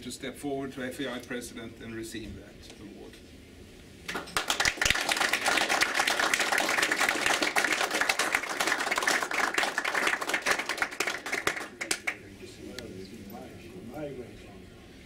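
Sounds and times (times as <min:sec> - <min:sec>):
audience applauding: 0:04.1 - 0:12.2.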